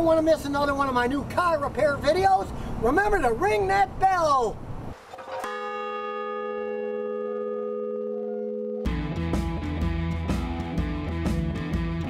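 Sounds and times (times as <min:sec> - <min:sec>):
large bell ringing: 0:05.2 - 0:09.2.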